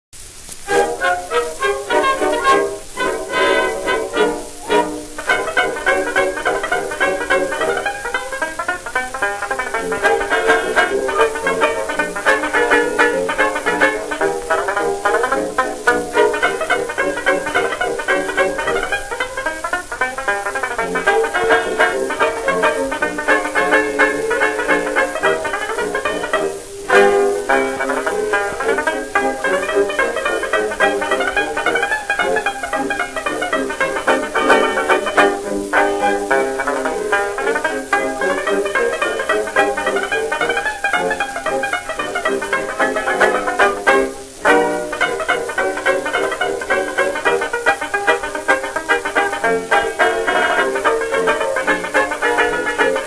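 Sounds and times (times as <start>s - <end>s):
record surface hiss: 0.1s - 53.0s
banjo solo with dance orchestra: 0.2s - 53.0s.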